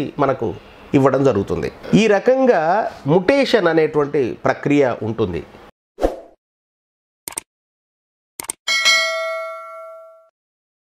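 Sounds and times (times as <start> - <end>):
bell ding: 8.7 - 10.3.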